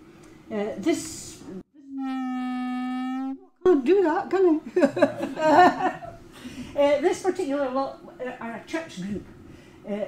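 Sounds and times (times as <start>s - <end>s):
steady pitched tone: 1.7s - 4.1s.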